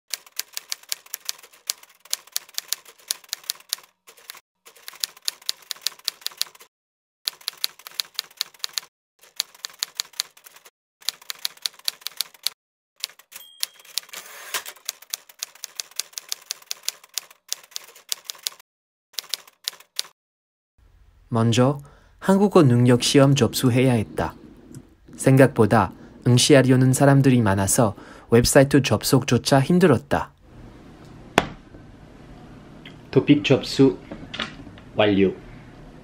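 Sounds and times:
typewriter keys clacking: 0.1 - 6.7, 7.3 - 18.6, 19.2 - 20.1.

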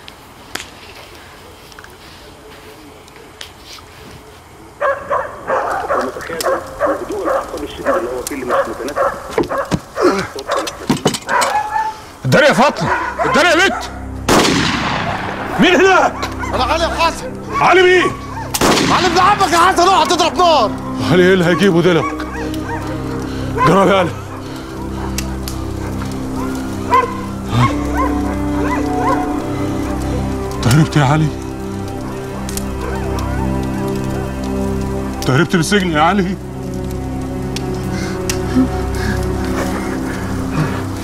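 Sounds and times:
dogs barking: 4.8 - 14.2, 16.0 - 18.6, 20.8 - 30.6, 31.5 - 35.1
low music drone: 11.5 - 41.0.

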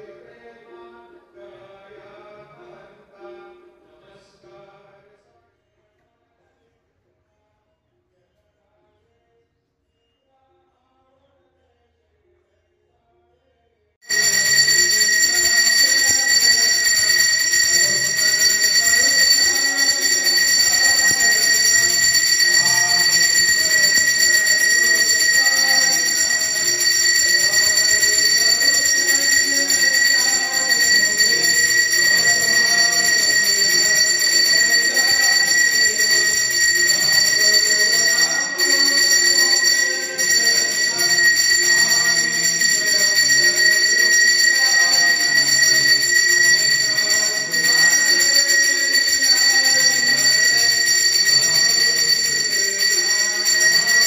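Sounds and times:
temple bell ringing: 14.0 - 54.0.

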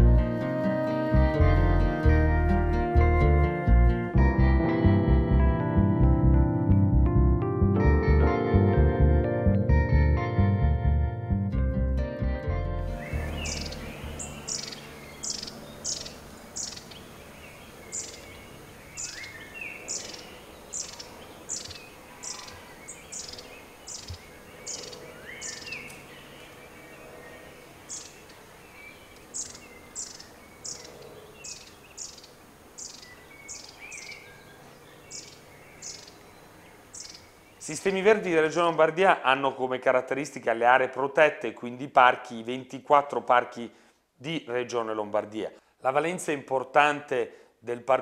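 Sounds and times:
background music: 0.0 - 15.3
birds calling: 12.8 - 38.8.

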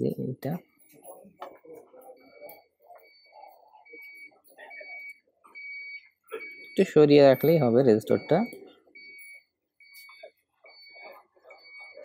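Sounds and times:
faint high-pitched electronic beeps: 0.0 - 12.0
low background murmur: 0.0 - 12.0.

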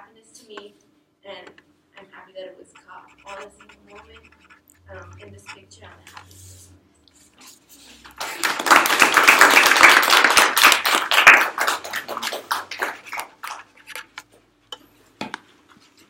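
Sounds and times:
group applauding: 8.1 - 13.8.

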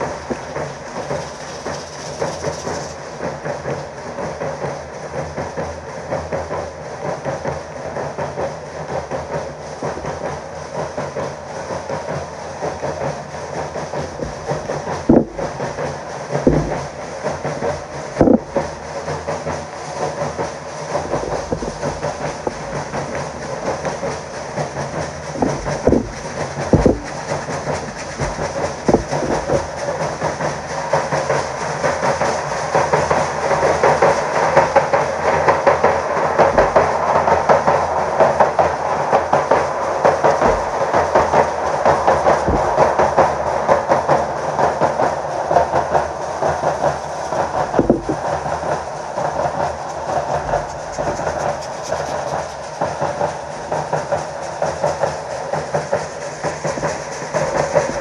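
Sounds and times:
rattling hiss: 0.0 - 58.0
bass drums beating: 14.0 - 18.8, 20.9 - 30.4, 36.5 - 37.1, 40.2 - 41.5, 42.3 - 43.4, 47.0 - 48.9.

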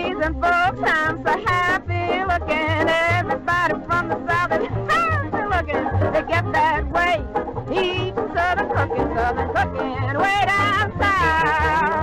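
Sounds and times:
pulsing bass beat: 0.0 - 12.0
small band playing: 0.0 - 12.0
woman singing with vibrato: 0.0 - 12.0.

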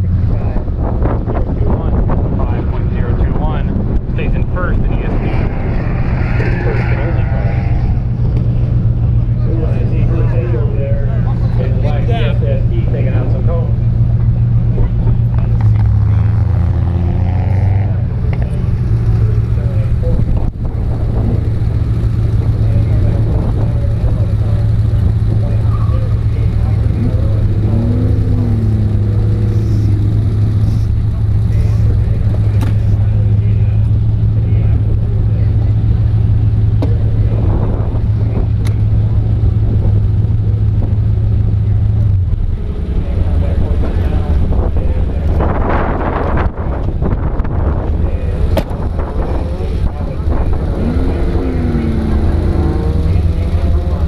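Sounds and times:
car engine idling: 17.8 - 54.0.

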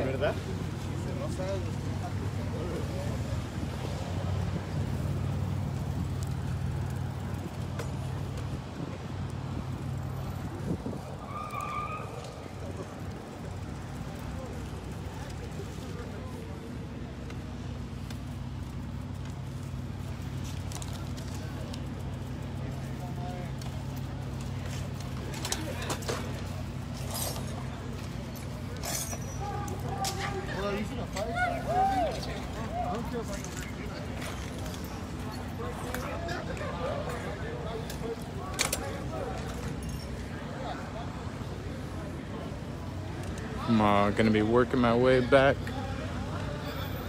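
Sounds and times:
street background hum: 0.0 - 47.0.

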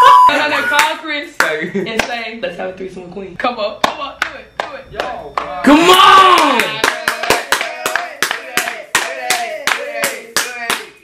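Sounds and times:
hands clapping rhythmically: 0.8 - 2.2, 3.8 - 5.6, 6.2 - 11.0.

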